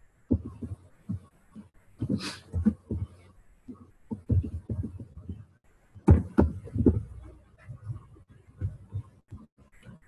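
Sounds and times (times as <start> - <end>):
keyboard keystrokes dull thumps: 0.3 - 10.0.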